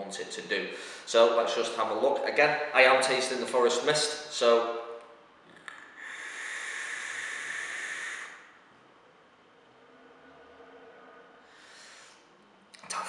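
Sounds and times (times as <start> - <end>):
breathy exhale hiss: 5.9 - 8.6, 11.4 - 12.3
vape drawing airy hiss: 6.0 - 8.5.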